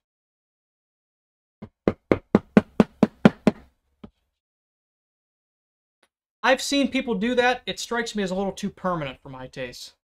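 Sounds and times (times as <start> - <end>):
mallet tapping leather tool: 1.6 - 3.7.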